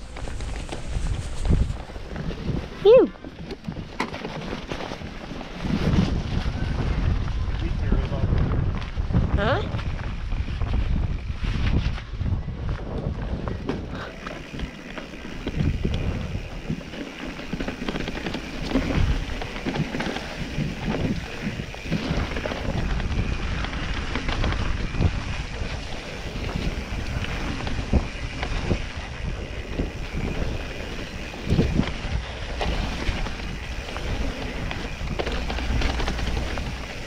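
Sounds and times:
bike knocking and rattling: 0.0s - 37.0s
bike tyres on dirt and rocks: 0.0s - 37.0s
wind on microphone: 0.0s - 37.0s.

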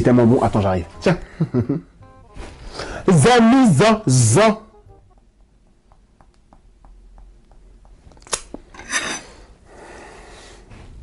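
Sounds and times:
knife blade scraping: 8.8s - 9.3s.

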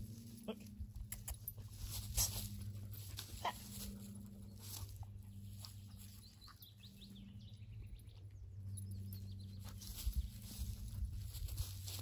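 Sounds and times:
steady low hum: 0.0s - 12.0s
rustling in dry leaves: 1.5s - 6.4s, 9.6s - 12.0s.

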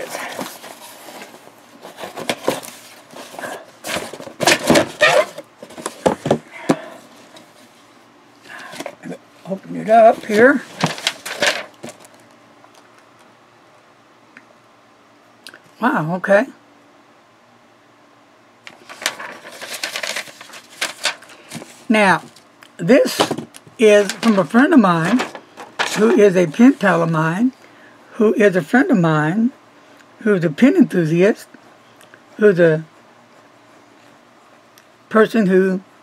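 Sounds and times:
paper and packaging rustling: 0.0s - 7.8s, 8.6s - 12.4s, 18.7s - 22.5s, 23.1s - 27.1s.

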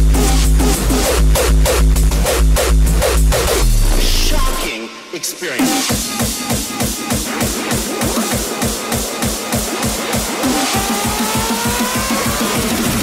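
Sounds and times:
fast kick drum: 5.7s - 13.0s.

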